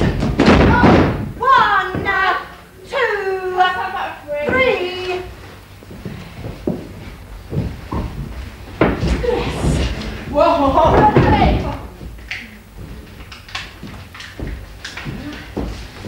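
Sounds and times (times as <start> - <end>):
bodies slamming on ring boards: 0.0 - 2.2.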